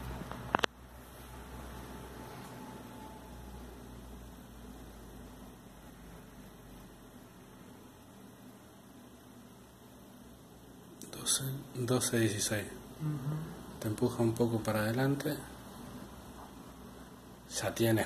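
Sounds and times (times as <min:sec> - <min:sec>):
low hum: 0:00.0 - 0:11.9
faint steady hiss: 0:00.0 - 0:18.0.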